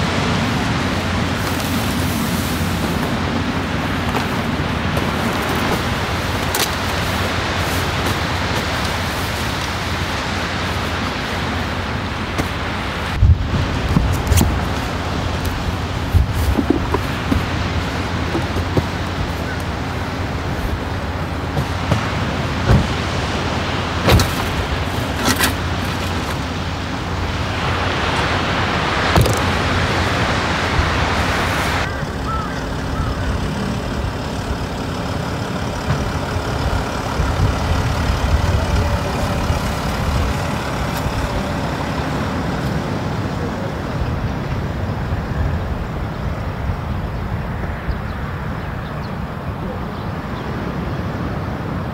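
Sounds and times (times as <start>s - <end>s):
steady low rumble: 0.0s - 51.9s
knocks of gear being packed: 24.0s - 26.4s.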